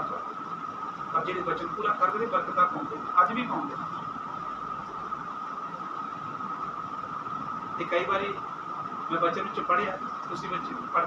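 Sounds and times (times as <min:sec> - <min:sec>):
constant hiss: 0:00.0 - 0:11.0
high-pitched whine: 0:00.0 - 0:11.0.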